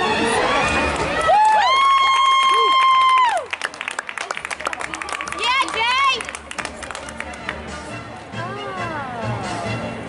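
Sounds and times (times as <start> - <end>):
hand clapping: 2.5 - 7.6.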